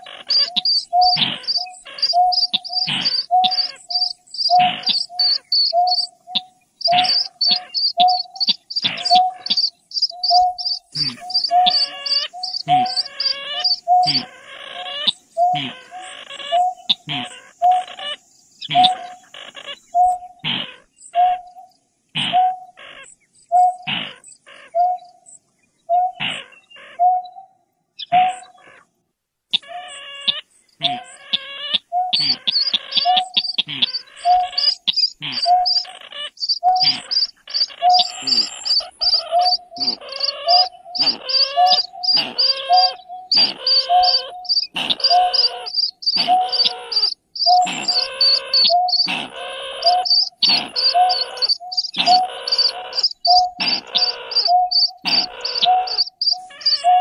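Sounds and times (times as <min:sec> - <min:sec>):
fast high ticking: 0:00.0 - 0:14.3, 0:32.2 - 0:56.8
harsh rasping bird notes: 0:00.0 - 0:20.9, 0:29.6 - 0:57.0
low hooting bird call: 0:00.0 - 0:25.2, 0:29.6 - 0:57.0.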